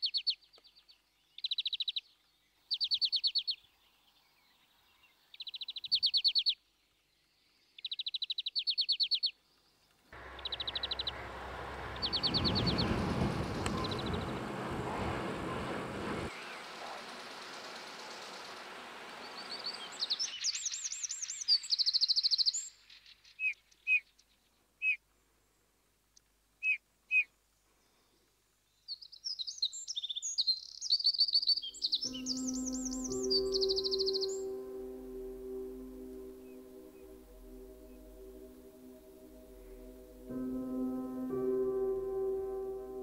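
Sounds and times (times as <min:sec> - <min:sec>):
even rushing noise: 0:10.2 - 0:20.4, 0:32.1 - 0:43.0
songbird trilling: 0:10.3 - 0:11.3, 0:29.5 - 0:38.2
short bird chirps: 0:28.9 - 0:34.6
ambient music with bell-like tones: 0:31.8 - 0:43.0.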